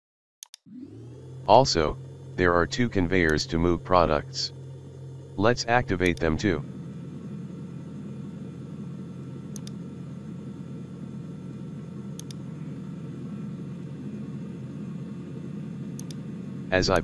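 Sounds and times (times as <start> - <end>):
conveyors running with low rumble: 0.6 - 17.0
faint clicks: 9.5 - 9.8, 12.1 - 12.4, 16.0 - 16.2.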